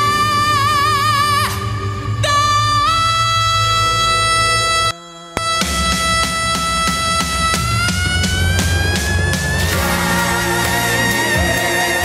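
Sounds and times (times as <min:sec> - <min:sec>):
low band accompaniment: 0:05.4 - 0:12.0.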